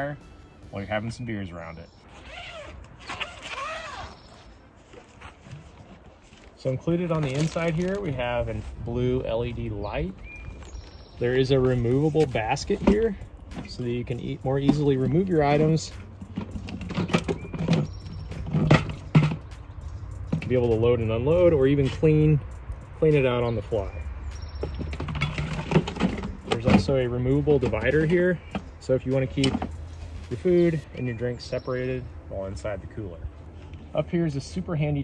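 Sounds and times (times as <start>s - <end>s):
zipper being pulled open: 2.0s - 6.2s.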